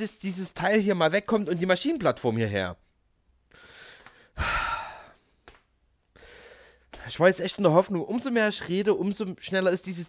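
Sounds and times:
man sighing: 3.6s - 5.4s.

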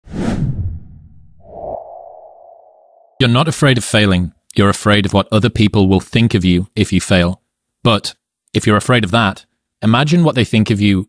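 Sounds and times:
loud whoosh: 0.0s - 3.2s.

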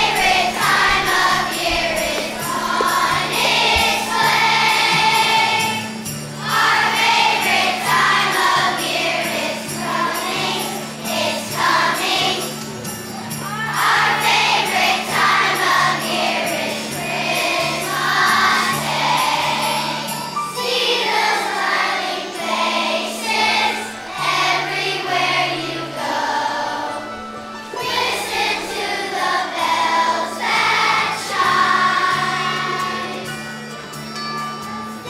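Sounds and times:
children's choir singing: 0.0s - 33.9s
children's choir singing a christmas song: 0.0s - 35.0s.

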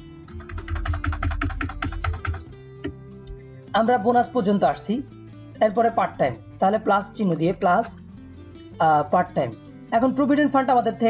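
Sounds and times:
soft background music: 0.0s - 11.0s
keyboard keys clicking: 0.3s - 2.5s.

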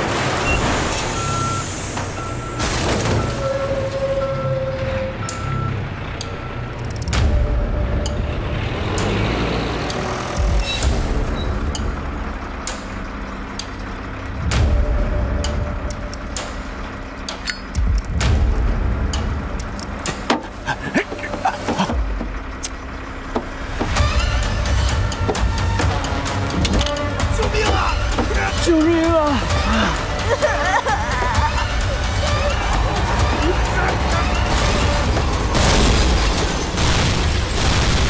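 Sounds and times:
diesel engine rumble: 0.0s - 38.0s
truck reversing beeper: 0.3s - 11.8s.

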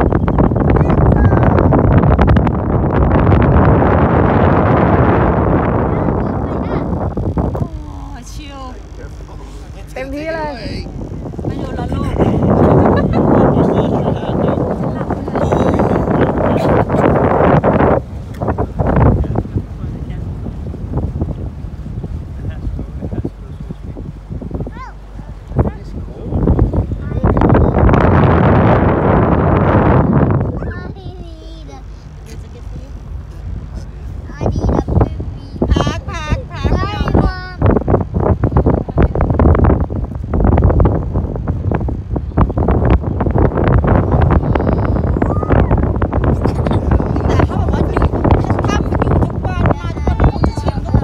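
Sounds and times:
low rumble of boat: 0.0s - 51.0s
wind buffeting microphone: 0.0s - 51.0s.

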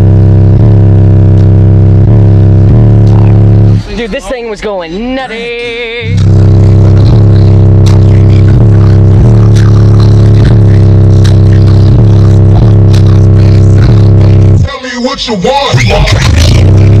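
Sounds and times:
deep bass from car subwoofers: 0.0s - 17.0s.

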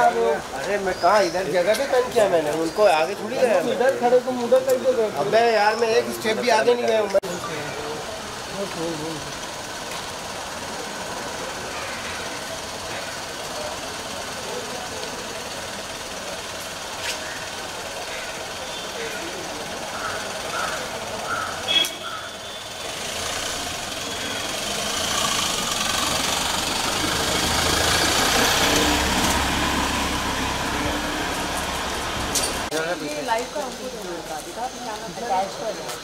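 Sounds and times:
people's voices: 0.0s - 36.0s
van engine running: 7.6s - 21.6s, 22.2s - 32.7s.

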